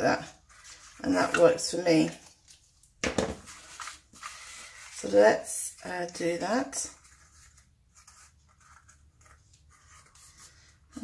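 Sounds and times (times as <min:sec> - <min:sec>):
folded paper rustling: 0:03.4 - 0:05.2.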